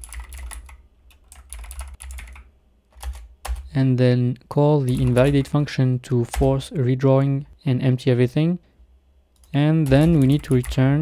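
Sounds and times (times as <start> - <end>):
computer keyboard typing: 0.0 - 3.7, 4.9 - 5.5, 6.3 - 6.6, 9.4 - 11.0.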